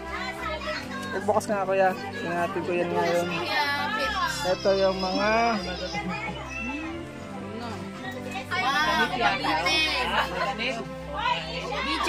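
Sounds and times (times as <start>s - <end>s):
music playing: 0.0s - 12.0s
voices of people at a party: 0.0s - 12.0s
children calling out: 3.0s - 7.2s.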